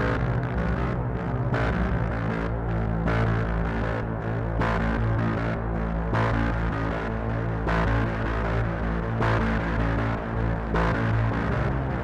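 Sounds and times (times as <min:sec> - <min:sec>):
electronic music with droning bass: 0:00.0 - 0:12.0.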